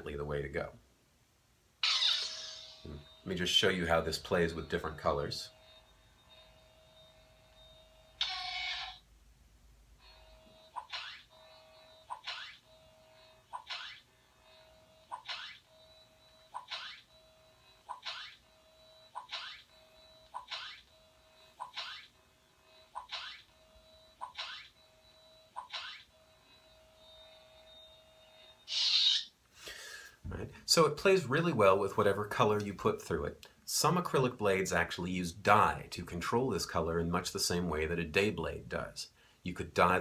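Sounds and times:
toy lightsaber electronic hum: 1.8s - 9.1s, 10.0s - 29.3s.

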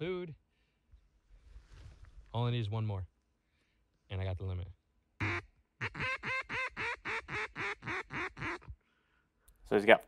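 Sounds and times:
duck quacking: 5.2s - 8.7s.

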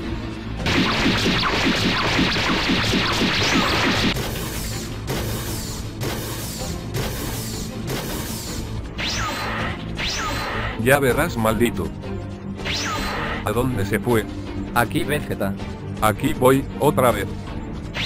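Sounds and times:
background music: 0.0s - 18.0s.

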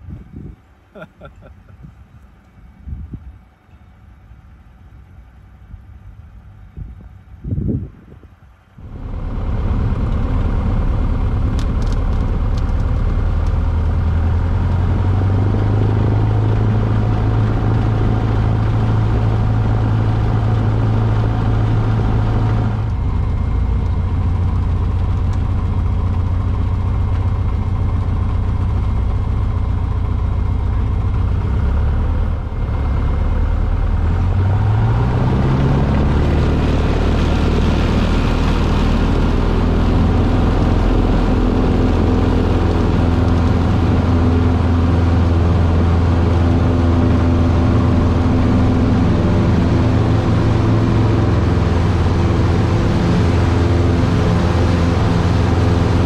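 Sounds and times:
light aircraft engine and propeller: 0.0s - 56.0s.

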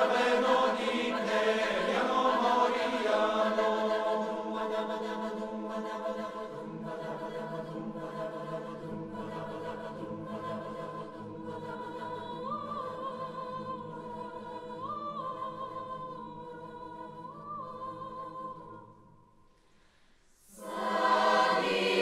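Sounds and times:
low men's voices singing: 0.0s - 12.2s
choir singing a cappella: 0.0s - 19.2s, 20.4s - 22.0s.

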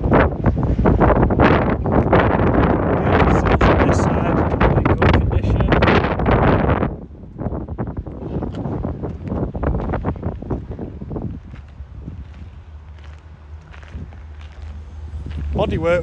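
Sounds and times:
gusty wind buffeting microphone: 0.0s - 16.0s.

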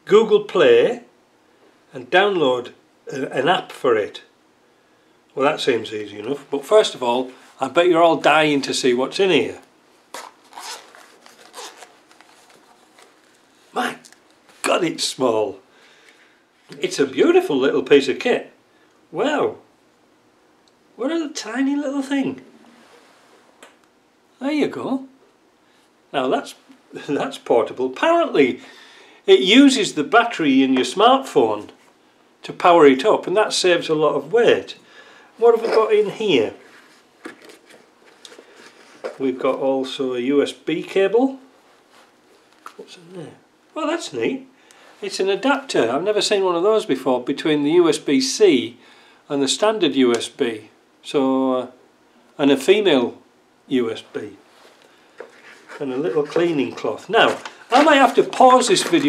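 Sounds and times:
zipper being pulled open: 10.1s - 12.8s
faint rustling: 54.2s - 59.0s.

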